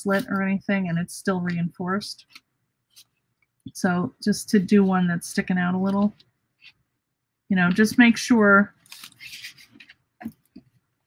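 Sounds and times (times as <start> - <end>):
paper rustling and sliding: 8.8 - 10.0.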